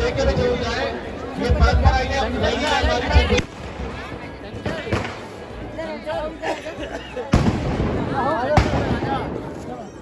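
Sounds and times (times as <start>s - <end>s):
crowd voices: 0.0s - 10.0s
firecracker bangs: 7.3s - 9.4s.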